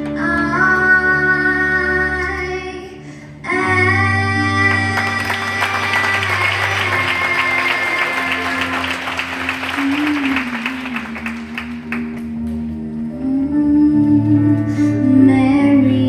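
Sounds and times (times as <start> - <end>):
slow instrumental accompaniment: 0.0 - 16.0
audience applause: 4.7 - 12.2.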